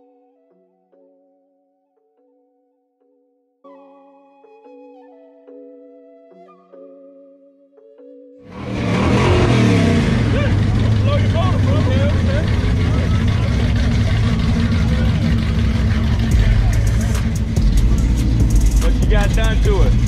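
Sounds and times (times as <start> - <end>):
car engine idling: 8.5 - 20.0.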